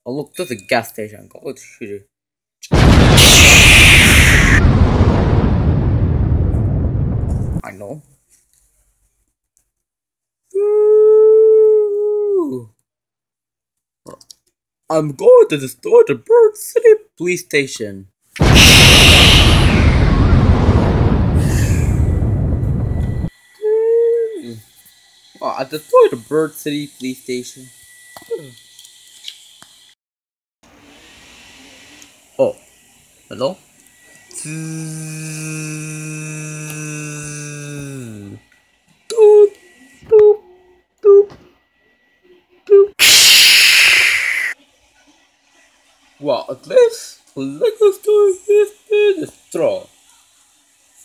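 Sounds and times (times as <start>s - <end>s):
child making sound effect: 23.6s - 24.5s, 34.4s - 38.4s, 42.7s - 44.6s
person droning tone: 34.4s - 38.4s.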